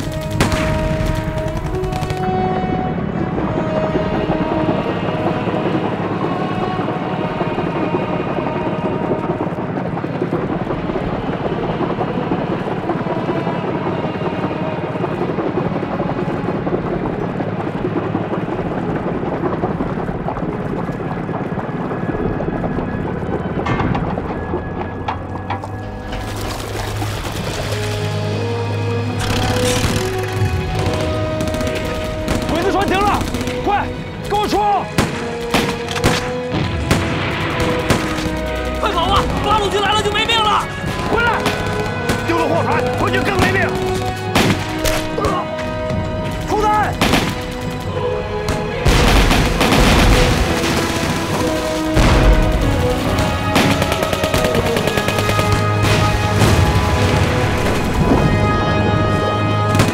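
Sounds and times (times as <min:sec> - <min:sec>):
explosions: 0:00.0 - 0:02.9, 0:34.9 - 0:47.7, 0:48.5 - 0:59.9
gunfire: 0:35.0 - 0:38.6, 0:40.9 - 0:45.2, 0:48.5 - 0:58.0.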